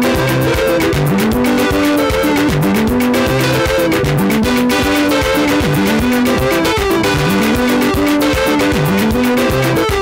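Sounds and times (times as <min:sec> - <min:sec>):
upbeat gospel dance music: 0:00.0 - 0:10.0.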